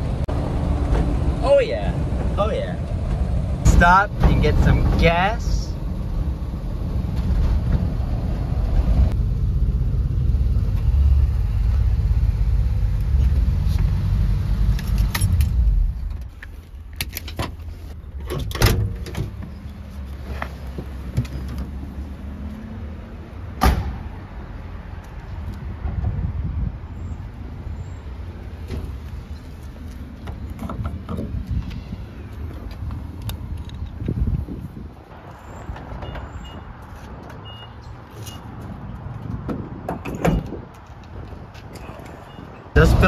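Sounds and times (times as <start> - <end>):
car engine rumble: 0.0 - 43.0.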